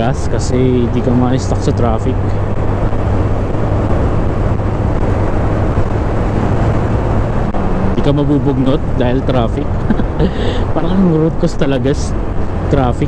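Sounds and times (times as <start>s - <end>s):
wind rush on microphone: 0.0s - 13.0s.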